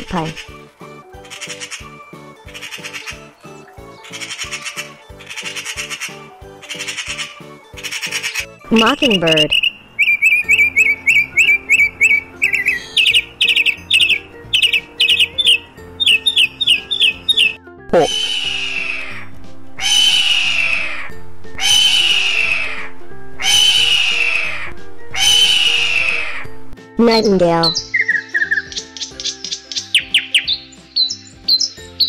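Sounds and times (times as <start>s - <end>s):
mockingbird singing high chirps: 0.0s - 32.0s
soft background music: 0.0s - 32.0s
hawk screeching: 6.8s - 26.6s
person speaking: 17.9s - 18.2s, 27.0s - 27.8s.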